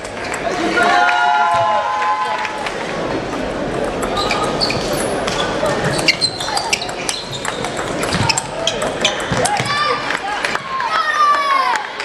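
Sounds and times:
hall chatter: 1.9s - 12.0s
table tennis ball ticking: 3.3s - 4.6s, 5.7s - 10.2s.

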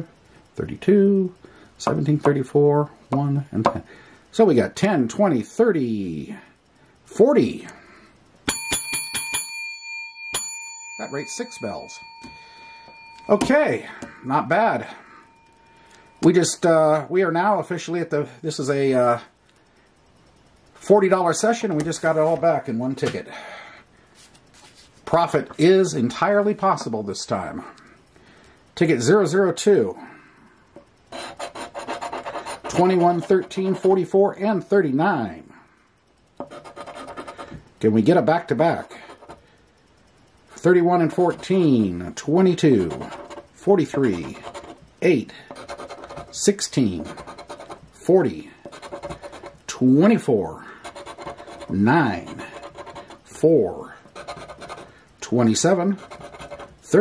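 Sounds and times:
small bell ringing: 8.4s - 16.6s
man speaking: 13.3s - 15.0s, 20.8s - 23.4s, 32.7s - 35.5s, 40.6s - 45.4s, 49.7s - 50.7s, 51.7s - 52.5s, 53.3s - 54.0s, 55.2s - 56.0s
coin scratching lottery ticket: 31.1s - 34.0s, 36.4s - 37.6s, 38.8s - 39.4s, 41.0s - 41.8s, 42.6s - 44.8s, 45.5s - 47.9s, 48.6s - 49.8s, 50.8s - 53.3s, 54.0s - 54.9s, 55.5s - 56.8s.

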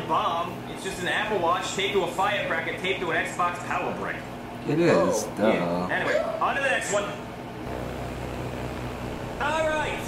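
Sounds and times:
propeller plane droning: 7.7s - 10.0s.

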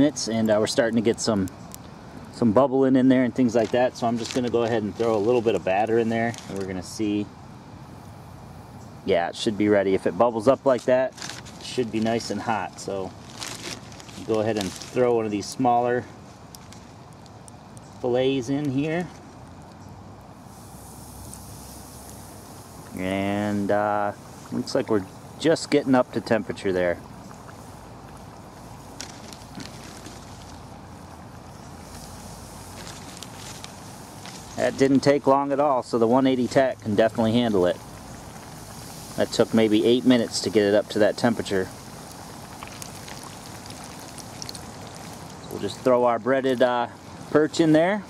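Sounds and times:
fish deep-frying in oil: 0.0s - 48.0s.

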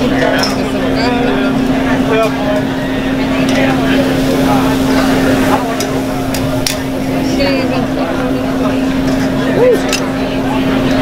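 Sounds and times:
many overlapping voices: 0.0s - 11.0s
steady low hum: 0.0s - 11.0s.

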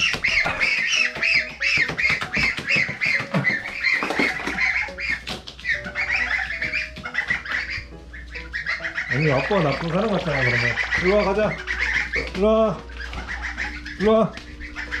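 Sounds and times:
goslings peeping: 0.0s - 15.0s.

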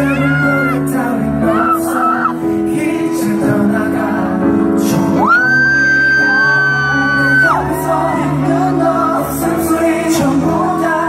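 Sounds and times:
slow ballad backing music: 0.0s - 11.0s
high-pitched scream: 5.2s - 7.6s.

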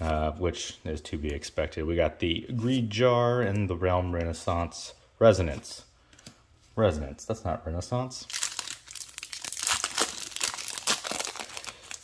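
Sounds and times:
foil wrapper crinkling and tearing: 8.3s - 12.0s.

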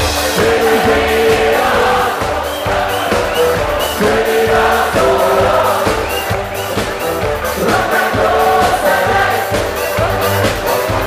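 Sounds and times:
drums beating: 0.0s - 11.0s
live band playing: 0.0s - 11.0s
people singing long notes: 0.2s - 11.0s.

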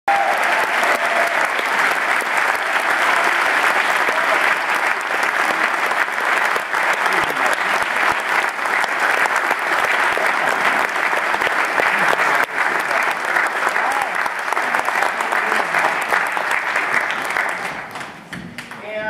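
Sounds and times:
audience applauding: 0.1s - 19.0s.

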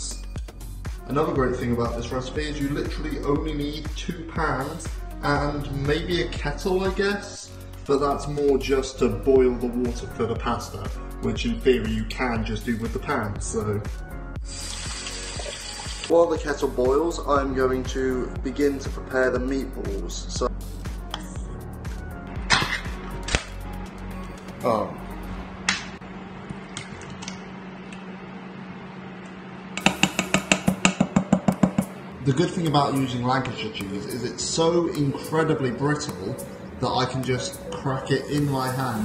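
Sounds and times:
background music: 0.0s - 26.0s, 29.8s - 39.0s
tap water running into kettle: 14.7s - 16.1s
steady low hum: 19.3s - 39.0s.

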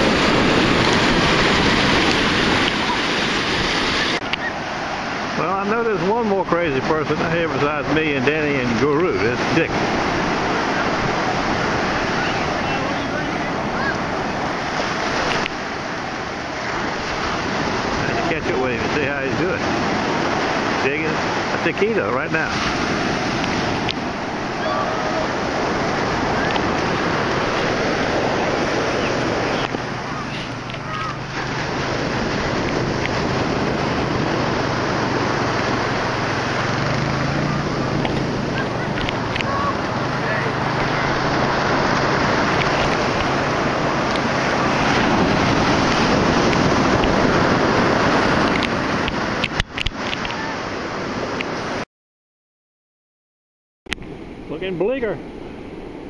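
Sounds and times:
wind on microphone: 0.0s - 5.4s, 6.0s - 51.8s
ocean surf breaking: 0.0s - 51.8s, 53.9s - 56.0s.

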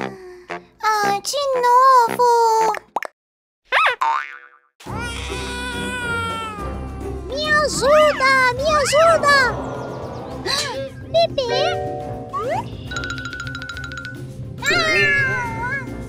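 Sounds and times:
cartoon boing sound effect: 3.8s - 4.7s
upbeat children's music: 5.0s - 16.0s
girl exclaiming: 14.6s - 15.9s.

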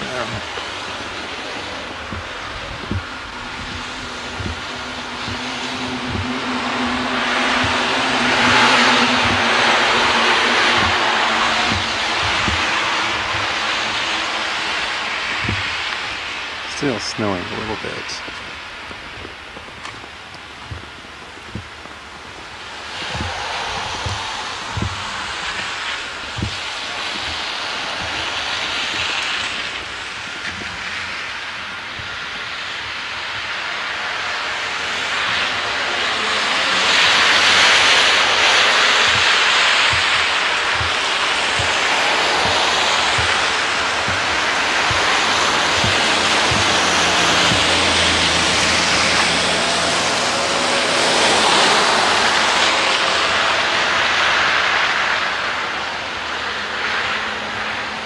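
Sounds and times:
car tyres hissing on slush: 0.0s - 58.0s.

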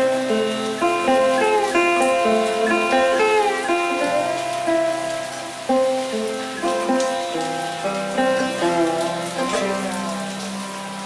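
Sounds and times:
rain: 0.0s - 11.0s
sitar melody: 0.0s - 11.0s.

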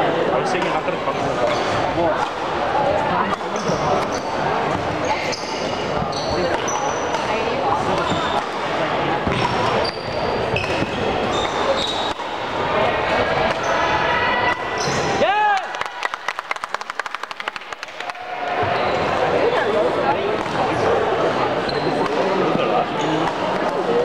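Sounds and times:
sneaker squeaks: 1.4s - 1.9s, 3.3s - 8.6s, 9.2s - 12.4s, 14.8s - 15.2s, 21.6s - 22.2s, 22.9s - 23.5s.

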